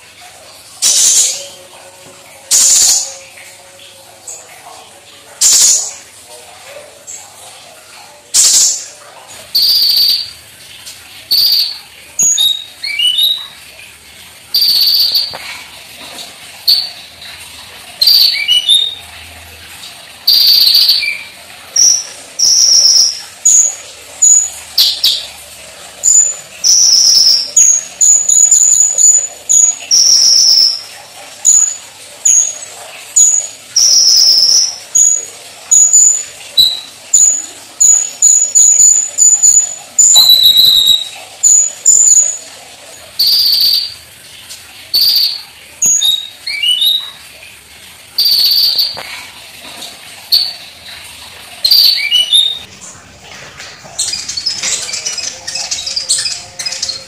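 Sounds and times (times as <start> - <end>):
sunbird singing: 11.3 - 13.5, 33.2 - 42.4, 51.7 - 57.0.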